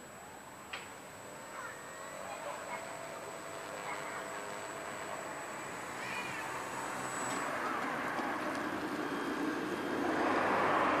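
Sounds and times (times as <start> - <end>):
wavering whine: 0.0 - 11.0
model plane electric motor: 1.4 - 10.1.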